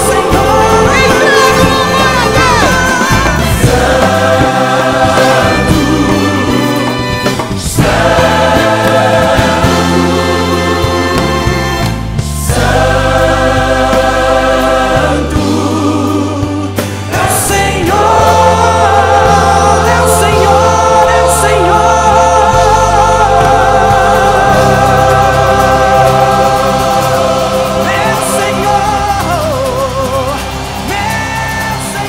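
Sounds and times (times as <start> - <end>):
gospel choir and band: 0.0 - 32.0.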